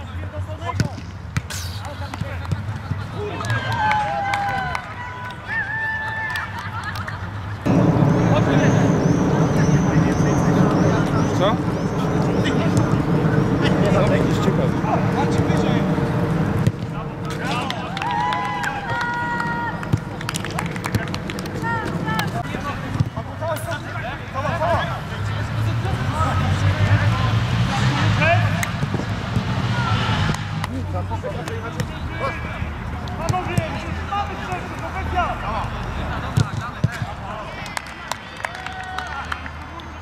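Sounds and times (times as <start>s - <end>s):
players shouting long calls: 17.4s - 20.0s.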